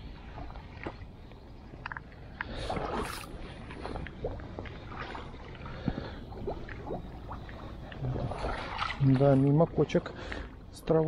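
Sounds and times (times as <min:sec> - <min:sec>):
boots sloshing through water: 0:00.1 - 0:10.6.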